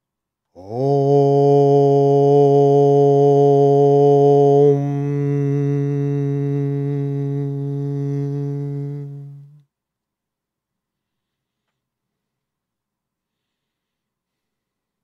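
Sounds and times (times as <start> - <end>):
man chanting om: 0.6 - 9.6.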